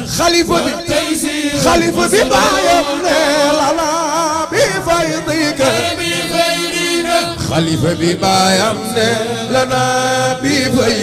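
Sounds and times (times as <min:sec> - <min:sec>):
lead voice singing: 0:00.0 - 0:11.0
men chanting religious poem: 0:00.0 - 0:11.0.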